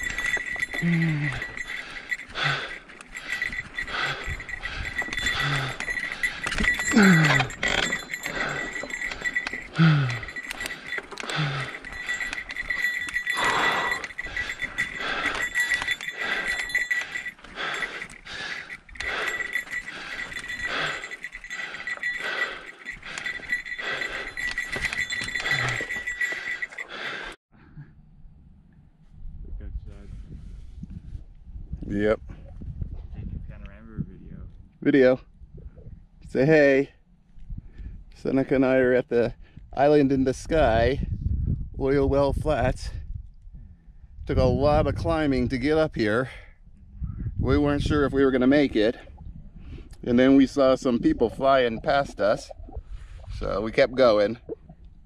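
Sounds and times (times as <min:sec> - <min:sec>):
bike clattering on rough trail: 0:00.0 - 0:13.4
person groaning breaths: 0:00.5 - 0:12.3, 0:13.2 - 0:27.4.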